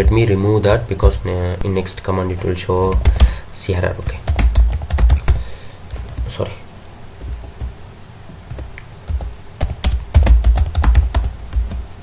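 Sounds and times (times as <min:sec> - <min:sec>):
computer keyboard typing: 0:02.9 - 0:03.3, 0:04.2 - 0:06.4, 0:07.2 - 0:07.7, 0:08.5 - 0:11.8.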